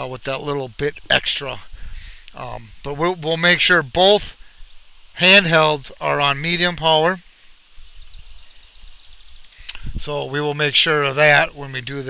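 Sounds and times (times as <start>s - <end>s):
wind rumbling on microphone: 1.5s - 3.2s, 7.6s - 12.0s.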